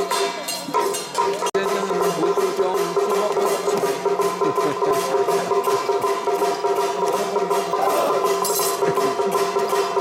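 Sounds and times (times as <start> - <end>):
drum strokes: 0.0 - 10.0.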